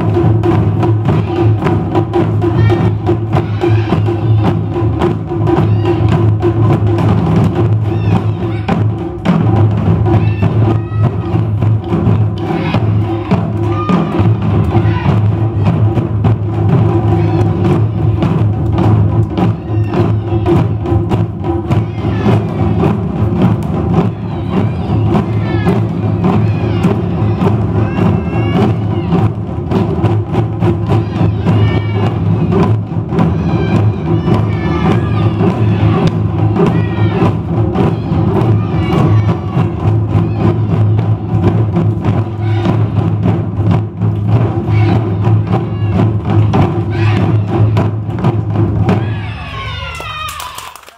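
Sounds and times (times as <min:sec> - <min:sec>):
taiko ensemble drumming: 0:00.0 - 0:50.6.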